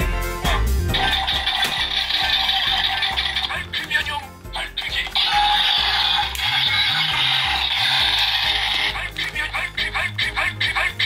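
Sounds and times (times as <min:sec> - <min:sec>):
buzzy electronic toy sound: 0:00.9 - 0:03.7, 0:05.0 - 0:09.4.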